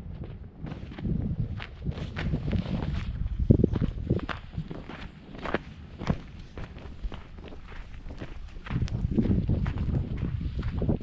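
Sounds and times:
footsteps on sandy ground: 0.0s - 11.0s.

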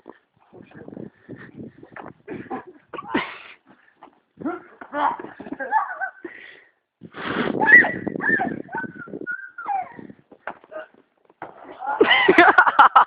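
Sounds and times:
people shouting and laughing: 4.4s - 6.3s, 11.7s - 13.0s.

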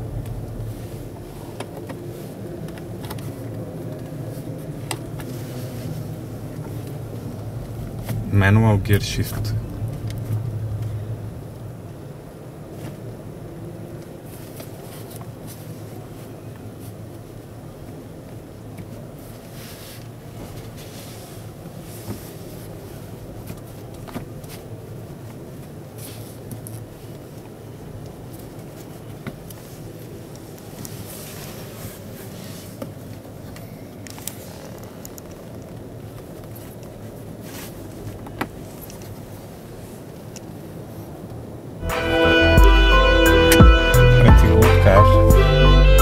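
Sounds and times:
low hum of exhibition hall: 0.0s - 13.9s.

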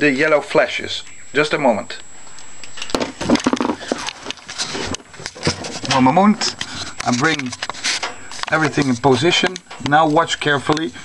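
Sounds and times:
cable handling clicks and rustling: 2.3s - 11.0s.

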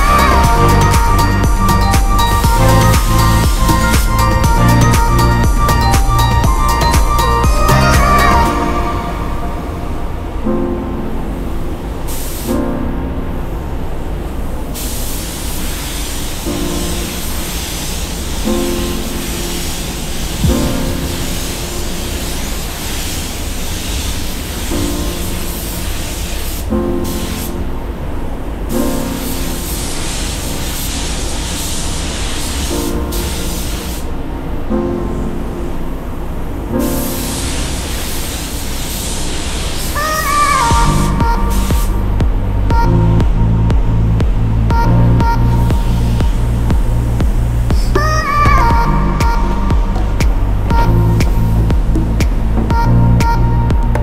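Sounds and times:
background music: 0.0s - 14.8s, 16.4s - 23.4s, 39.9s - 54.0s
spray gun hissing: 12.1s - 12.5s, 14.8s - 27.6s, 29.1s - 34.1s, 36.9s - 42.0s.

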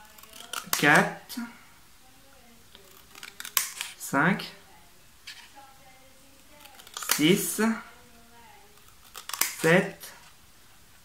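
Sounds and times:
scissors scraping into cardboard: 6.5s - 7.6s, 8.7s - 9.7s.

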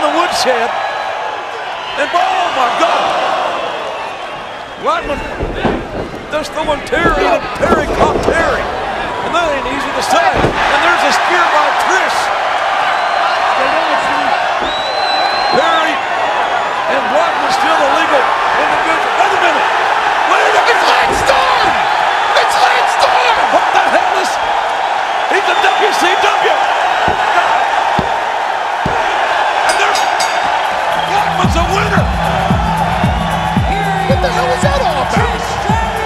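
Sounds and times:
crowd shouting and cheering: 0.0s - 36.0s.

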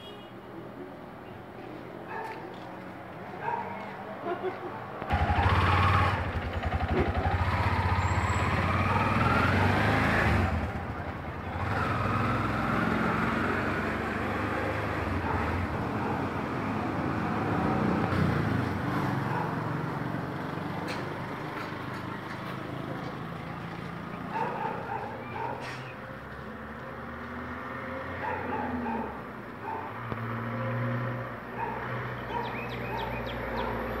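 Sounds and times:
roadside background noise: 0.0s - 34.0s
vehicle passing close by: 5.1s - 34.0s.

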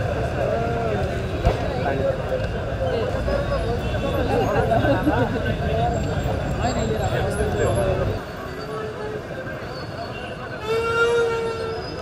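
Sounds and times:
crowd murmur: 0.0s - 12.0s
vehicle horn: 10.6s - 11.8s.

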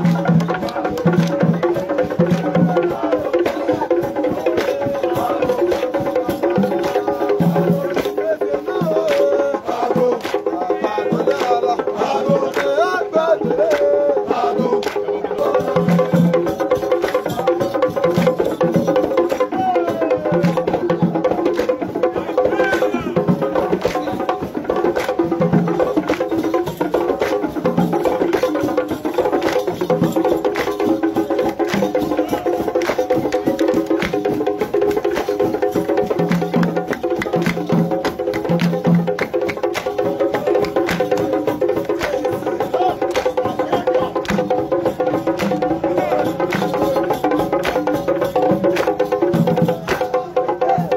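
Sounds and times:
crowd voices: 0.0s - 38.6s, 39.4s - 50.9s.

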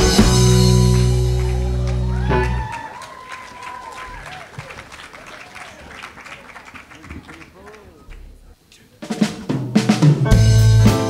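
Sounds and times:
audience clapping: 0.0s - 8.6s
voices calling out: 0.7s - 9.0s.

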